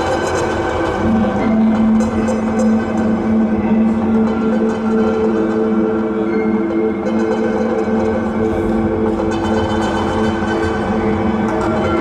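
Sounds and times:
modular synthesizer drone: 0.0 - 12.0.

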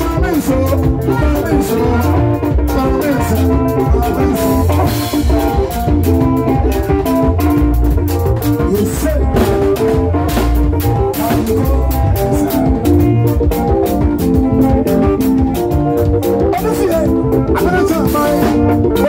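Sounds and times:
drum kit beat: 0.0 - 19.0
electric bass guitar: 0.0 - 19.0.

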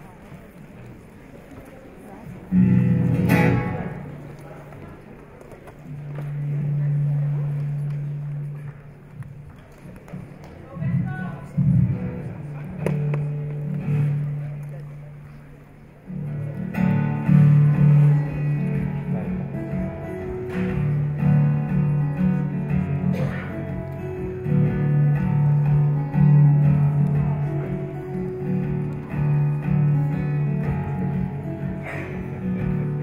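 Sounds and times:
acoustic guitar strum: 2.5 - 4.2, 11.6 - 14.5, 16.1 - 33.0
plucked guitar notes: 2.5 - 4.7, 5.7 - 33.0.

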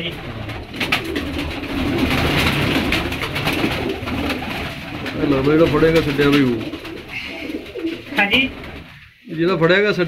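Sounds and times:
pigeons cooing: 0.0 - 9.2.

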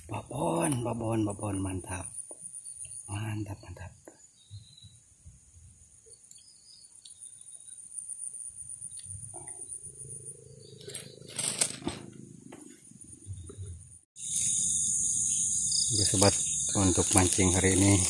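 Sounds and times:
insects chirring: 0.0 - 18.0
fishing rod handling rustles: 10.8 - 12.8.

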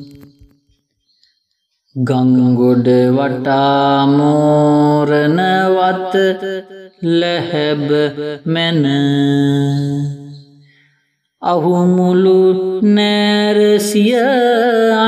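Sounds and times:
person chanting verse: 2.0 - 10.5, 11.4 - 15.0.

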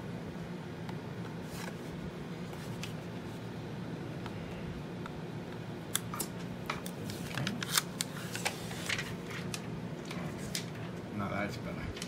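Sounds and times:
plastic film peeling crackles: 6.8 - 9.7.

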